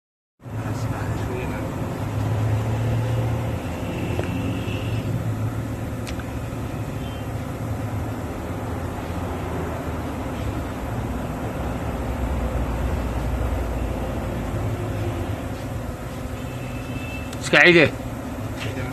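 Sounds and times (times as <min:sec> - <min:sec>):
road vehicle rumble: 0:00.4 - 0:18.9.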